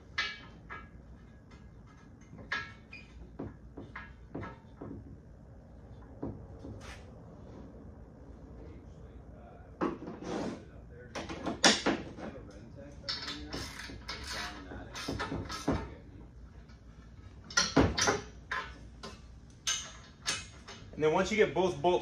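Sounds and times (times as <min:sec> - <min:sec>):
metal clinks and knocks: 0:00.0 - 0:05.2, 0:17.2 - 0:21.0.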